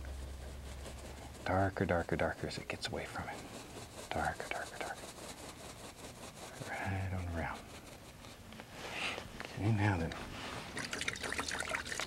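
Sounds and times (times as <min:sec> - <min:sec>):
paintbrush swishing in liquid: 0:00.0 - 0:08.4, 0:10.2 - 0:12.0.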